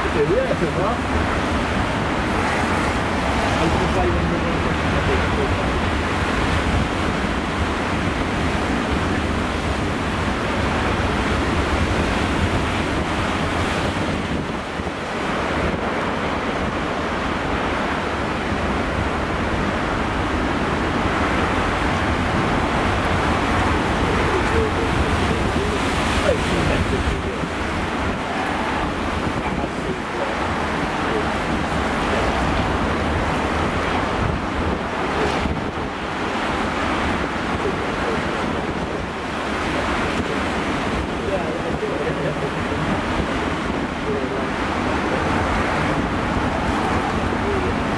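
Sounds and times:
storm surf breaking over rocks: 0.0s - 47.9s
wind buffeting microphone: 0.0s - 47.9s.

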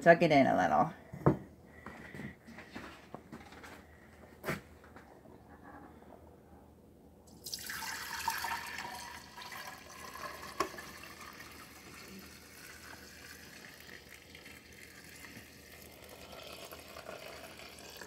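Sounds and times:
milk pouring into a glass jar: 7.3s - 18.0s.

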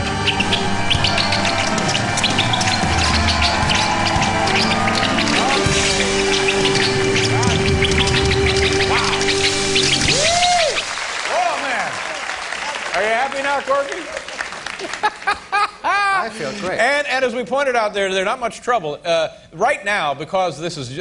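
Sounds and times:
high chirps and squeaks: 0.0s - 11.0s
live band fanfare music: 0.0s - 11.4s.

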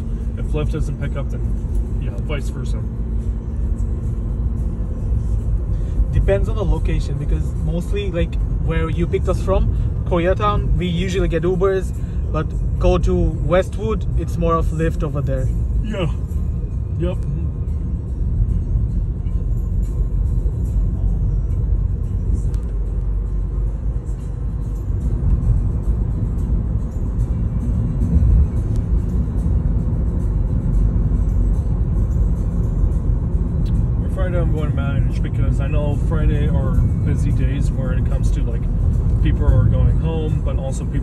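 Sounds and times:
car driving rumble inside cabin: 0.0s - 41.0s.

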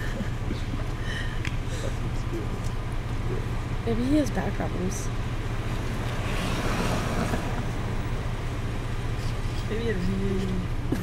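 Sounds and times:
car engine idling hum: 0.0s - 11.0s
broad rushing noise: 5.4s - 11.0s.

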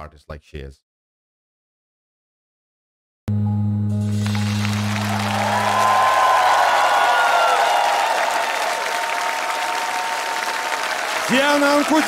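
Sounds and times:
audience applauding: 4.1s - 12.0s.

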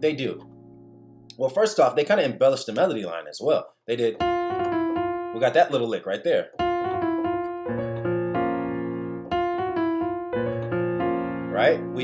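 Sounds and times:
piano gospel lick and chord: 4.2s - 5.9s, 6.5s - 12.0s.

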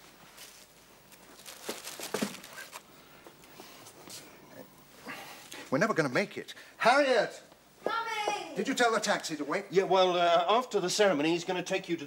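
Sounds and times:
tissue paper rustling and crinkling: 0.0s - 2.9s.

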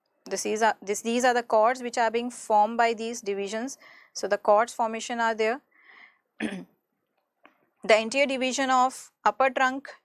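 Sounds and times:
woman speaking: 0.3s - 5.6s, 7.8s - 10.0s
woman coughing: 6.4s - 6.7s.

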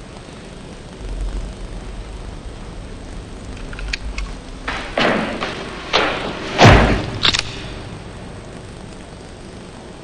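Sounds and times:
deep low rumble: 0.0s - 9.6s
steady hiss: 0.0s - 10.0s.

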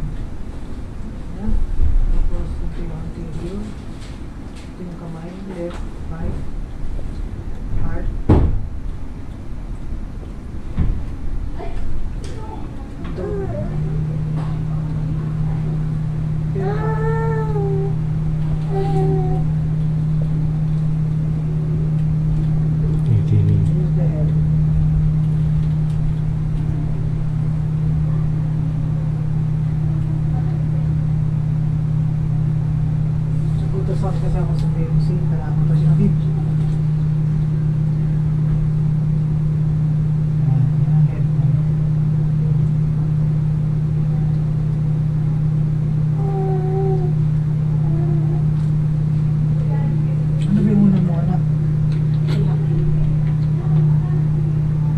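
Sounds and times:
low mechanical hum: 0.0s - 54.9s
faint voices: 11.6s - 19.5s, 22.8s - 24.3s.

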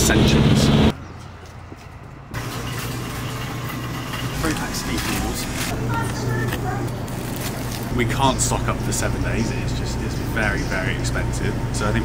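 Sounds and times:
steady low hum: 1.8s - 12.0s
indistinct voices: 4.3s - 12.0s.

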